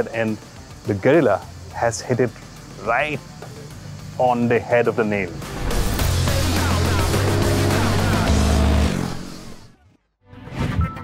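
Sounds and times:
background music: 0:00.0 - 0:11.0
motorcycle engine revving: 0:05.1 - 0:09.8.

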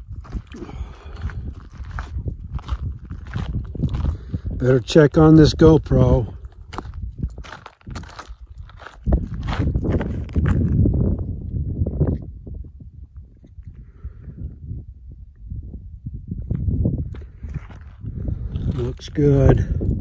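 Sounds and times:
footsteps crunching on gravel: 0:00.0 - 0:11.0, 0:17.0 - 0:19.6.

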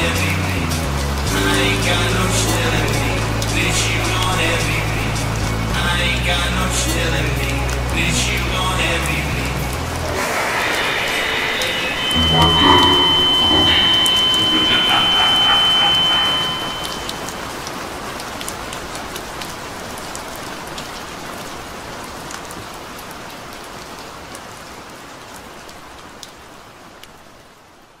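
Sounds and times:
music: 0:00.0 - 0:10.3, 0:11.1 - 0:17.4
rain pattering: 0:13.2 - 0:28.0.

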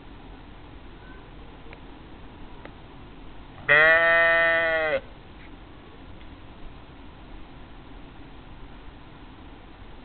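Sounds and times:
sheep bleating: 0:03.6 - 0:05.0.

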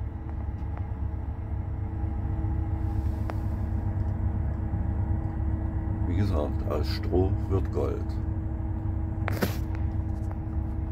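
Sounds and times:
engine idling: 0:00.0 - 0:10.9.

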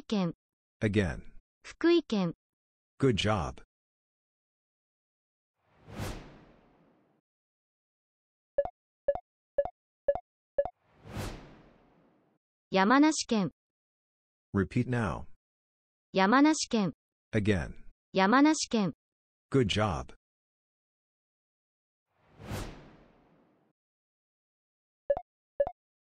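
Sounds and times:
whoosh sound effect: 0:05.7 - 0:07.1, 0:10.9 - 0:12.2, 0:22.2 - 0:23.6.

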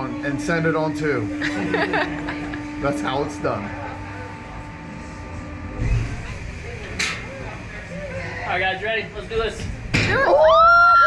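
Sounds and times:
faint voices: 0:00.0 - 0:09.9
faint steady hum: 0:00.0 - 0:11.0.

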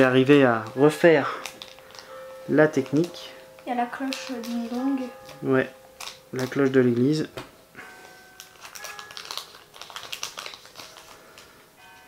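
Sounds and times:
faint church bells ringing: 0:00.0 - 0:09.5, 0:11.7 - 0:12.0
foil wrapper crinkling: 0:00.0 - 0:12.0
trading cards rustling: 0:00.0 - 0:12.0.

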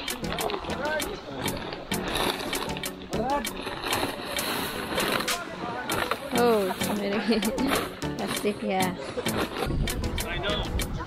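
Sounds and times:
wind noise: 0:09.3 - 0:11.0.

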